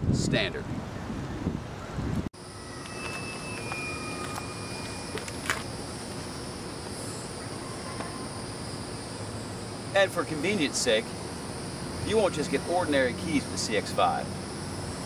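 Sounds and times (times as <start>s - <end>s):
outdoor background hiss: 0.0s - 15.0s.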